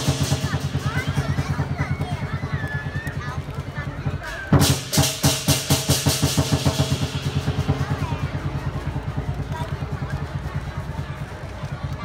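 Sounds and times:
cymbal crashes: 0.0 - 1.0, 4.5 - 8.6
drum beating fast: 0.0 - 12.0.

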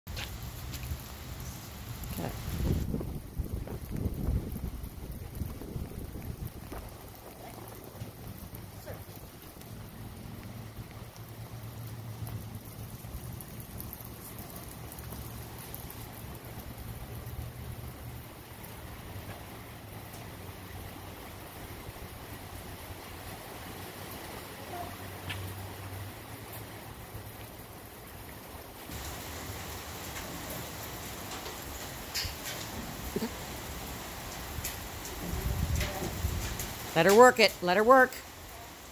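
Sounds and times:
wind rumble on microphone: 0.5 - 11.0, 32.2 - 37.0.

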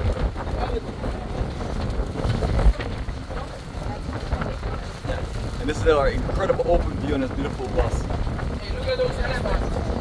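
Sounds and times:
engine and road rumble: 0.0 - 10.0
wind buffeting microphone: 0.0 - 10.0.

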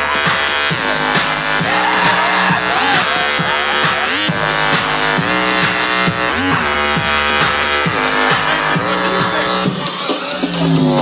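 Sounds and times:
screechy synth line: 0.0 - 9.9
electronic dance music: 0.0 - 11.0
steady kick drum: 0.0 - 11.0.

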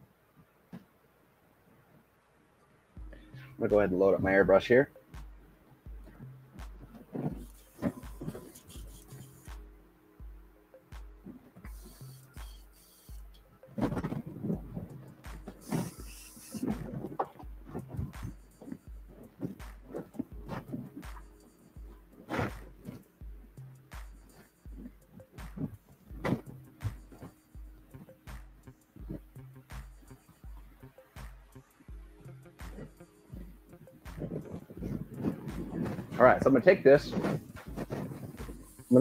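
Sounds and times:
background music with bass beat: 3.0 - 39.0
short hiss: 11.7 - 13.2, 15.6 - 16.8
knocks and handling clatter: 13.7 - 21.4.

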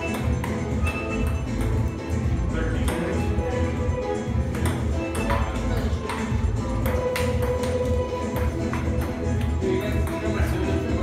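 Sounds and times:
table tennis ball hits: 0.0 - 10.8
loud background music: 0.0 - 11.0.

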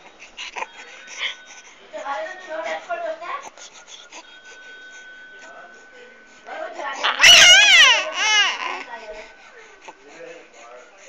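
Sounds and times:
baby squealing cry: 7.0 - 8.8.

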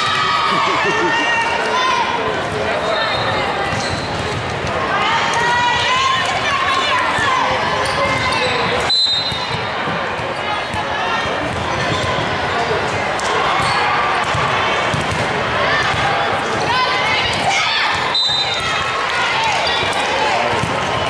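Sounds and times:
voices calling out and chattering: 0.0 - 21.0.

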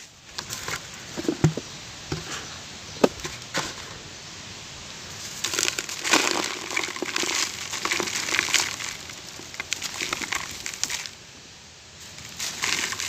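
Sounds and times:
charcoal ash crunching in hands: 5.3 - 11.2, 12.1 - 13.0.

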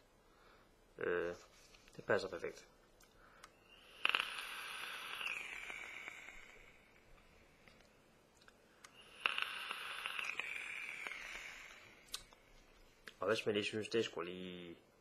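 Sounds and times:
hiss of air drawn through vape: 3.5 - 7.7, 8.8 - 12.5.

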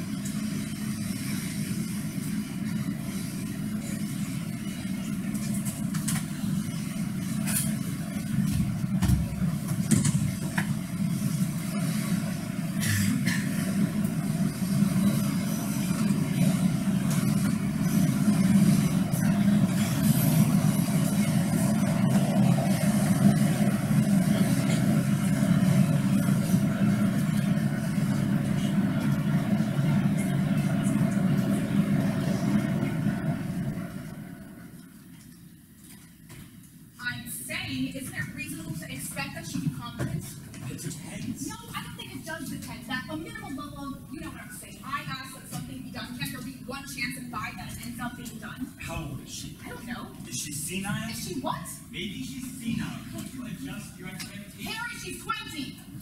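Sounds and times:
low rumbling ambience: 0.0 - 56.0.

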